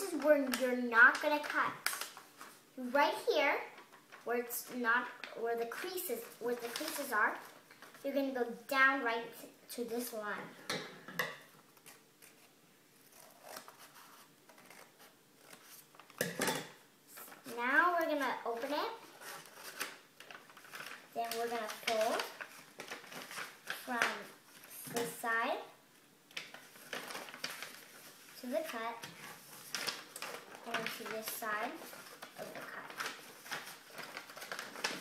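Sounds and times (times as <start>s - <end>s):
paper rustling and crinkling: 0.0s - 2.7s, 3.6s - 8.2s, 17.1s - 25.2s, 26.3s - 35.0s.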